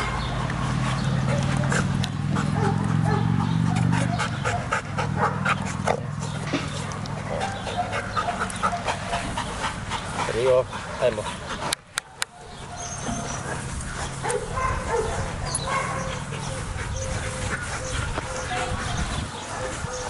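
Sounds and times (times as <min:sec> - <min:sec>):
dog panting: 0:00.0 - 0:20.0.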